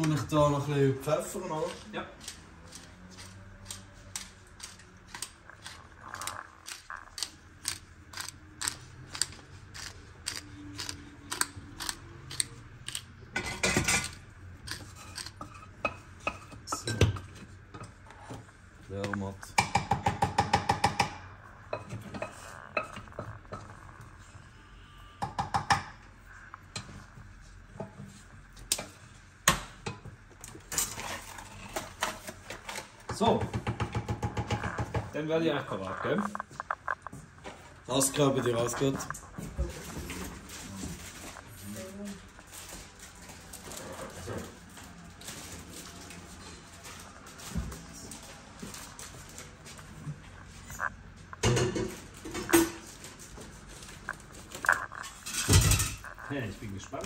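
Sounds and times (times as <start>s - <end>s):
pepper mill grinding clicks: 4.6s - 13.1s
kitchen knocks and clatter: 13.4s - 14.2s, 19.5s - 23.8s, 29.5s - 35.2s, 51.4s - 53.0s, 54.8s - 56.2s.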